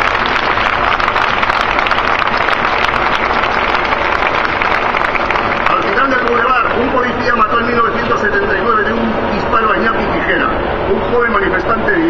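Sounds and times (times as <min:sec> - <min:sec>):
crowd applauding: 0:00.0 - 0:07.1.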